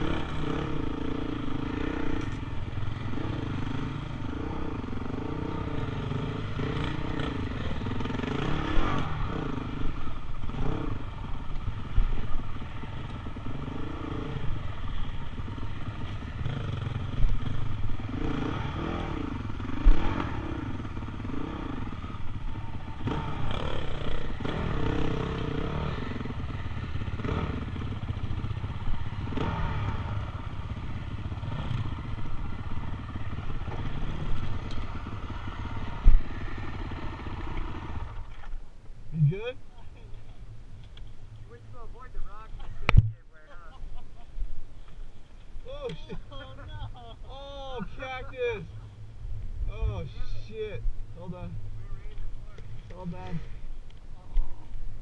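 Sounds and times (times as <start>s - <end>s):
dirt bike engine revving: 0.0s - 38.5s.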